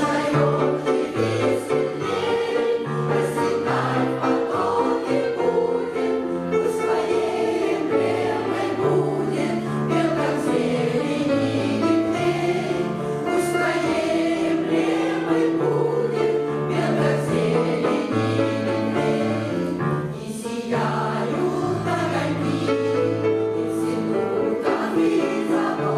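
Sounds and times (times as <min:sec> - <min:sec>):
women's choir singing: 0:00.0 - 0:25.9.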